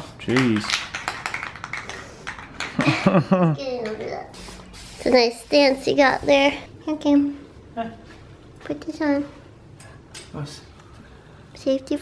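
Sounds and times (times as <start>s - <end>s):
spray can mixing ball rattling: 0.2s - 2.8s
person laughing: 2.8s - 3.6s.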